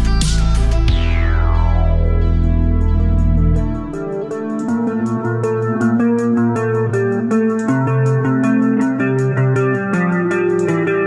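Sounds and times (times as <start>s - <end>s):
background music with ticking beat: 0.0s - 11.0s.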